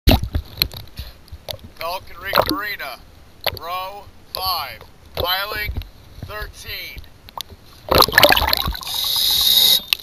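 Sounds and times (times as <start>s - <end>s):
water splashing and sloshing: 0.1s - 6.4s, 7.1s - 9.1s.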